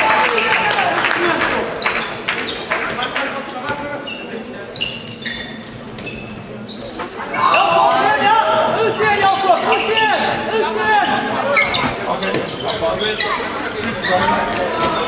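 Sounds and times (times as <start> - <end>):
shoes squeaking on court floor: 1.8 - 15.0
players calling out: 6.6 - 15.0.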